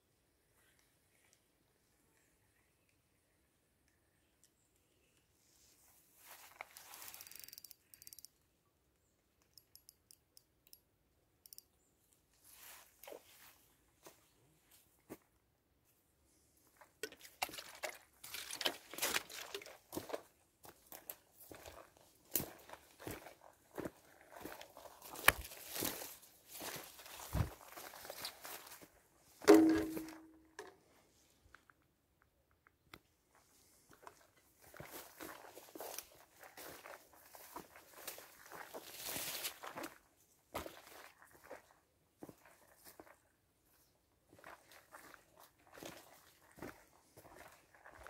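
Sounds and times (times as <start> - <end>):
dry grass and twigs crackling underfoot: 5.6 - 8.2, 12.3 - 15.3, 16.8 - 30.8, 33.3 - 48.0
plastic water bottle crinkling: 17.0 - 19.9
sharp knock: 29.5 - 30.2.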